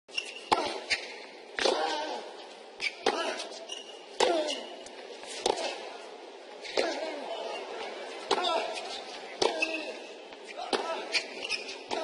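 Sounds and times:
rackets striking tennis ball: 0.2 - 2.0, 5.3 - 5.8, 8.2 - 12.0.

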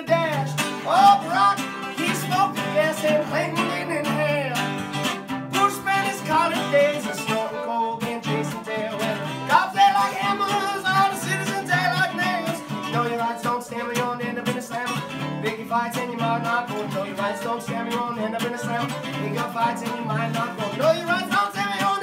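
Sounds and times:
fiddle melody: 0.0 - 22.0
strummed acoustic guitar: 0.0 - 22.0.

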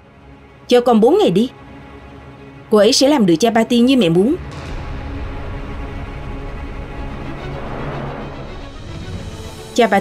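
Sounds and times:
tense background music: 0.0 - 10.0.

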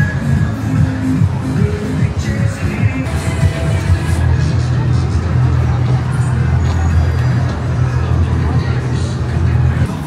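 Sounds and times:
funfair music: 0.0 - 10.0
murmur of voices: 0.0 - 10.0.

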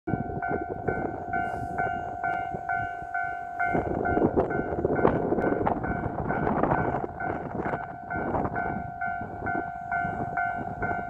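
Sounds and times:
level crossing warning bell: 0.1 - 11.0.

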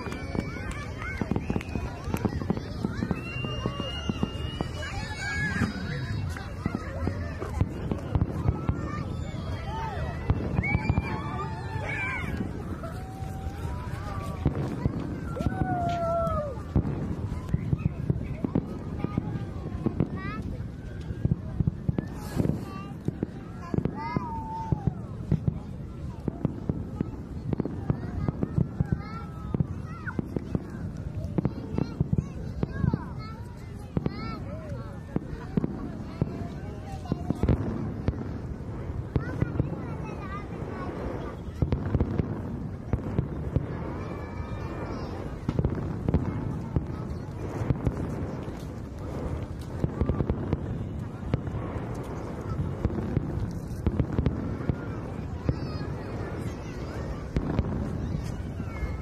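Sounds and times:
fireworks bangs and crackles: 0.0 - 59.0.

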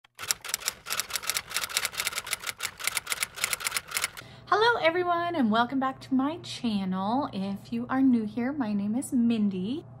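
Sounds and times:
typewriter key clicks: 0.1 - 4.2.

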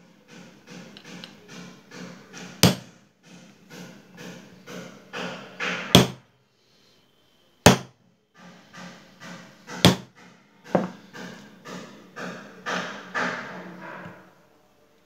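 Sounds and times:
sharp metallic knocks: 0.3 - 6.2, 7.7 - 14.0
screwdriver scraping metal: 0.7 - 2.6.

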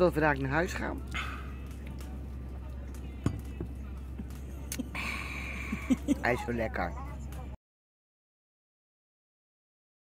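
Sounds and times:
distant voices: 0.0 - 7.6
faint background music: 0.0 - 7.6
steady low hum: 0.0 - 7.6.

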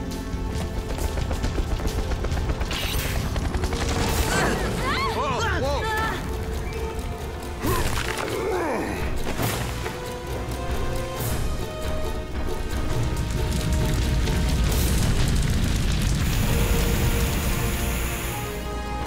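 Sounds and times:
background music with held notes: 0.0 - 19.0.

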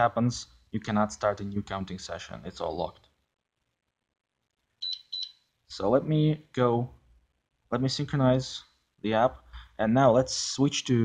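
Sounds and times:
high-pitched smartphone beep: 4.8 - 5.5.

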